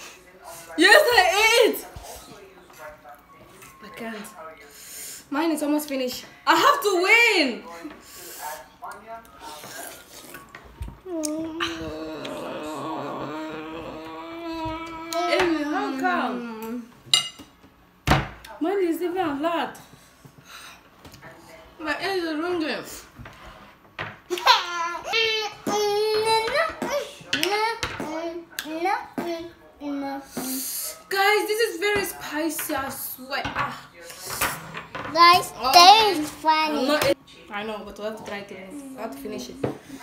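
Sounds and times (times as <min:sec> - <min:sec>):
person moaning: 0:11.0 - 0:16.6.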